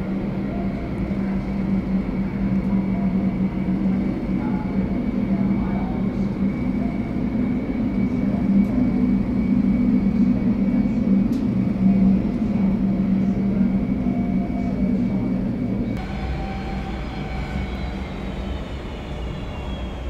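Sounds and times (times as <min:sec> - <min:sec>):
jet engines running: 0:00.0 - 0:20.0.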